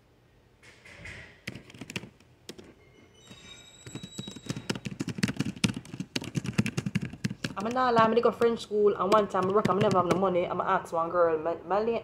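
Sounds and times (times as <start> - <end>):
rapid clicks and taps: 1.4 - 2.7, 3.9 - 10.3.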